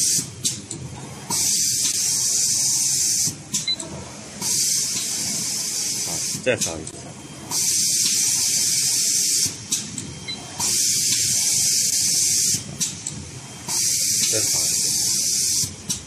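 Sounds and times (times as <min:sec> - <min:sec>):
hissing air blasts from machine: 0:00.0 - 0:00.5, 0:01.2 - 0:03.5, 0:04.3 - 0:06.5, 0:07.4 - 0:09.9, 0:10.6 - 0:12.7, 0:13.6 - 0:15.8.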